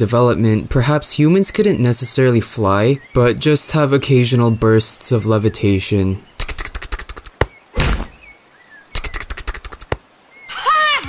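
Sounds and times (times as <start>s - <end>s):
cartoon bird chirping: 6.3s - 7.5s, 8.9s - 10.7s
cartoon thump: 7.3s - 8.2s
cartoon fluttering flap: 9.0s - 10.0s.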